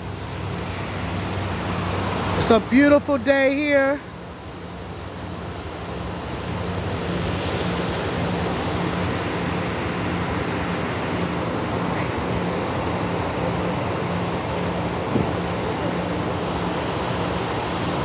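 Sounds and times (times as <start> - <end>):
passing traffic: 0.0 - 18.0.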